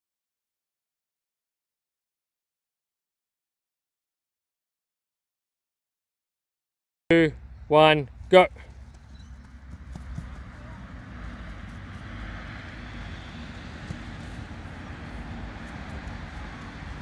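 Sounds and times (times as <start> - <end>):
steady outdoor rumble and hiss: 7.1 - 17.0
studded boots running on grass: 8.5 - 17.0.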